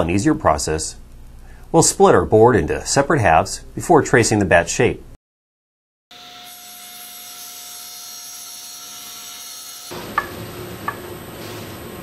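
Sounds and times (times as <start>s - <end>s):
table saw cutting board: 6.1s - 12.0s.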